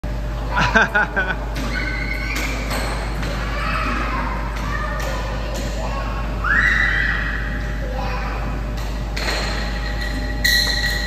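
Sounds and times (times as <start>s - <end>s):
child's high squeal: 6.4s - 7.3s.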